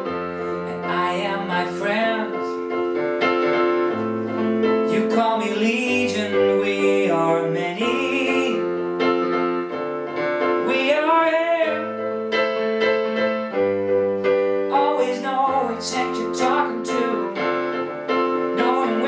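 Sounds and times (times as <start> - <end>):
piano chords: 0.0 - 19.0
man singing: 0.6 - 2.5, 4.9 - 8.7, 10.6 - 12.0, 14.7 - 17.4, 18.6 - 19.0.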